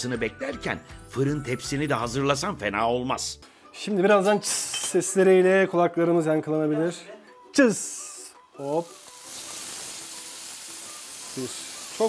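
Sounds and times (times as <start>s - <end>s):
meat sizzling in a grill pan: 8.6s - 12.0s.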